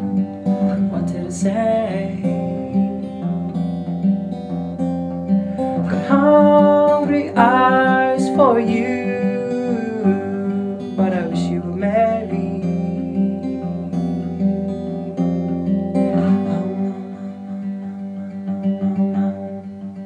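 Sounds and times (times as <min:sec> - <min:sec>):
person singing: 0:00.0 - 0:03.1, 0:05.5 - 0:14.4, 0:16.1 - 0:18.2
acoustic guitar strumming: 0:00.0 - 0:20.0.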